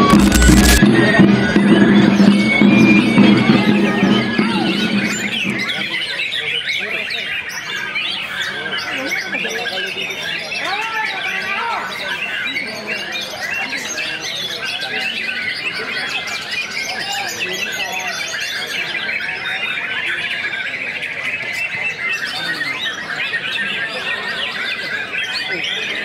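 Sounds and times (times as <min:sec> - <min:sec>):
fast repeated bird trill: 0:02.0 - 0:06.7.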